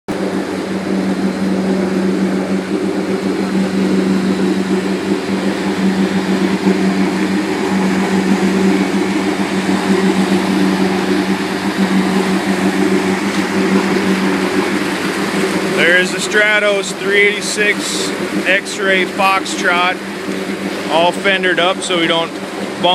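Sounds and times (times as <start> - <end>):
boat engine droning: 0.1 - 22.9
water rushing past hull: 0.1 - 22.9.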